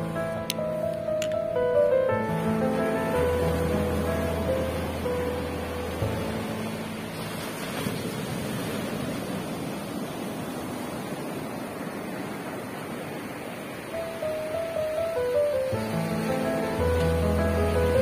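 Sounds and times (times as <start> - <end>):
soft background music: 0.0 - 7.8, 13.9 - 18.0
surf washing up a beach: 0.0 - 18.0.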